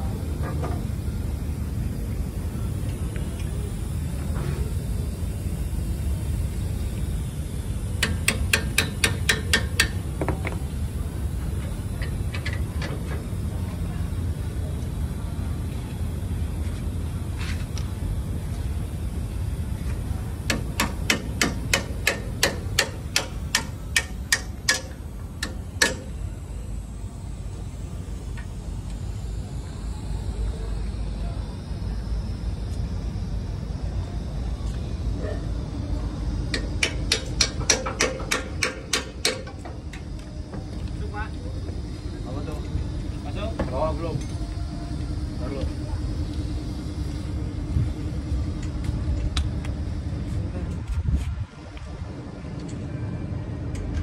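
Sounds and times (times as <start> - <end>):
constant hum: 0.0 - 54.0
sharp metallic clicks of hand tool: 8.0 - 10.0, 20.5 - 26.1, 36.5 - 40.0.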